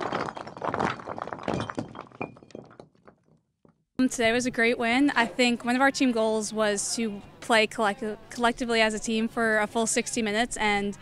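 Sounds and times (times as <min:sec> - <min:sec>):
brick breaking and debris scattering: 0:00.0 - 0:03.4.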